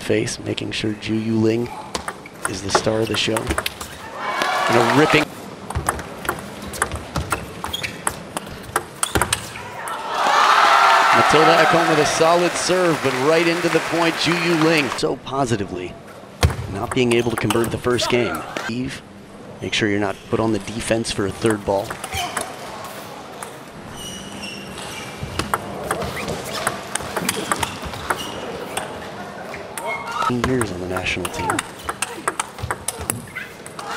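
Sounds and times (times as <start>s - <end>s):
table tennis ball clicking: 2.0s - 3.8s, 29.8s - 33.8s
crowd applause: 4.2s - 5.3s, 10.0s - 15.0s.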